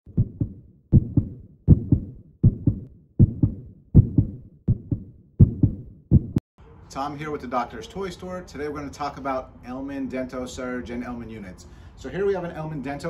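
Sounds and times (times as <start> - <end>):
heartbeat double thumps: 0.1 - 6.4.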